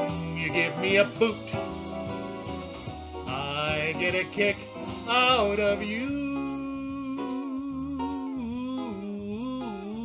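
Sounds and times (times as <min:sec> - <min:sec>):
quiet instrumental backing: 0:00.0 - 0:10.0.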